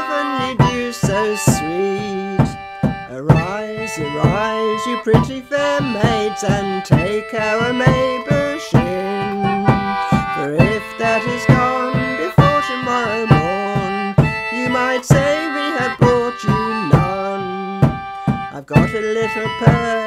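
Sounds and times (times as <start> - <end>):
concertina chords: 0.0 - 20.0
woman singing folk melody: 0.0 - 20.0.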